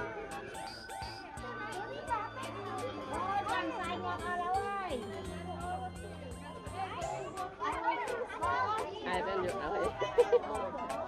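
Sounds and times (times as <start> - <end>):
voices talking over one another: 0.0 - 11.0.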